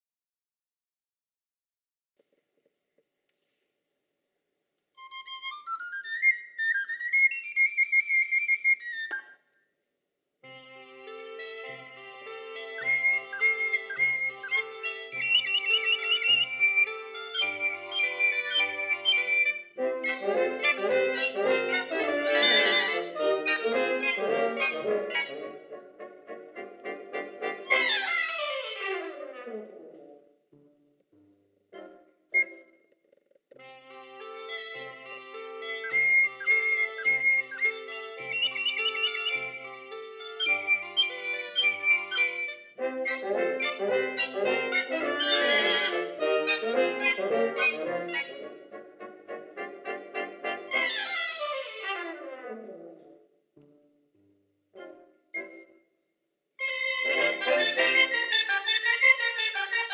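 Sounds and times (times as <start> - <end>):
folk wind band playing: 10.5 - 29.9, 33.6 - 52.6, 56.6 - 59.9
high-pitched pipe solo: 35.7 - 42.5.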